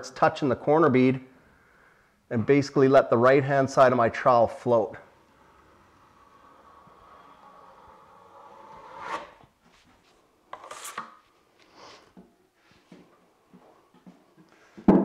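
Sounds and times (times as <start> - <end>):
trowel scraping joint compound: 4.7 - 11.4.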